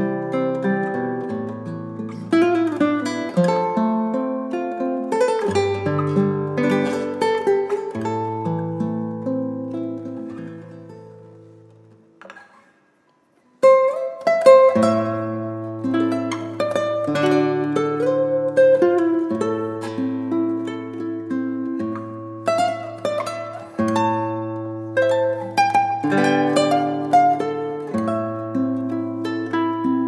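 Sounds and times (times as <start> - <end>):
classical guitar fingerstyle: 0.0 - 30.0.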